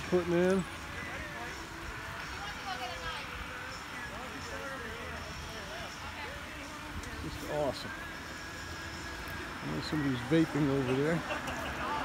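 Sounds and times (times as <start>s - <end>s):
man talking: 9.6s - 11.3s.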